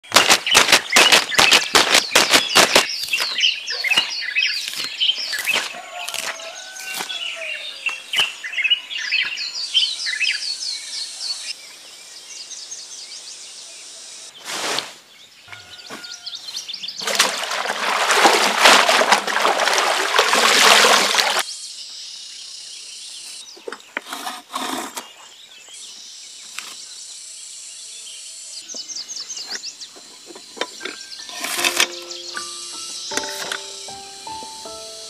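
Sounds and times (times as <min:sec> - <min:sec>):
birds chirping: 0:00.0 - 0:18.3, 0:20.0 - 0:35.0
water splashing in a tub: 0:17.0 - 0:21.4.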